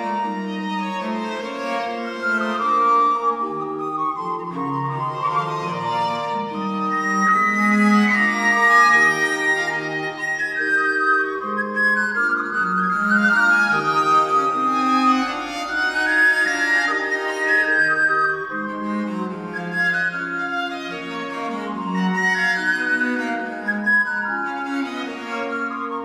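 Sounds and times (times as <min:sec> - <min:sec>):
recorders playing melodies: 0:00.0 - 0:26.0.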